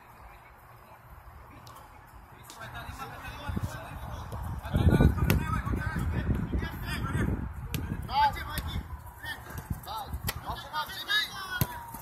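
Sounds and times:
players shouting: 0:09.3 - 0:12.0.

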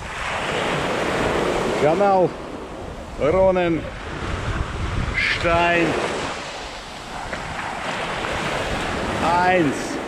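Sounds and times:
small waves washing on sand: 0:00.0 - 0:10.0
wind rumbling on microphone: 0:00.0 - 0:10.0.

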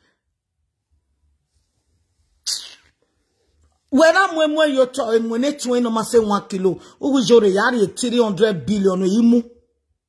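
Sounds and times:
person breathy hiss: 0:02.4 - 0:03.1
person speaking: 0:03.8 - 0:09.7.

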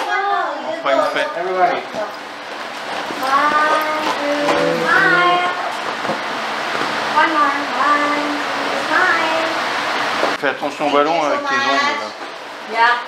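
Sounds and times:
high-pitched voices calling out: 0:03.2 - 0:05.7.

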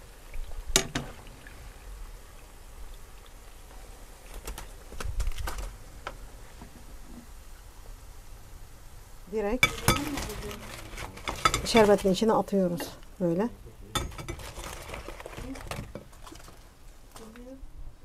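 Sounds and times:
metal spoon clinking on pan: 0:09.6 - 0:10.2, 0:14.0 - 0:14.4.

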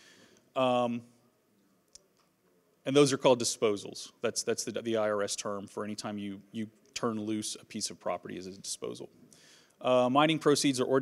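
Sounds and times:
man speaking: 0:00.6 - 0:01.2, 0:02.8 - 0:09.2, 0:09.8 - 0:11.0.

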